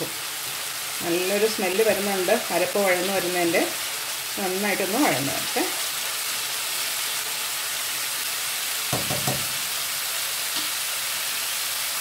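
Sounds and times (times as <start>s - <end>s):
spice paste sizzling in oil: 0.0s - 12.0s.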